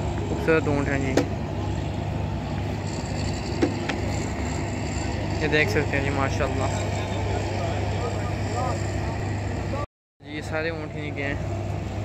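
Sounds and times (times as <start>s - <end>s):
low motor hum: 0.0s - 12.0s.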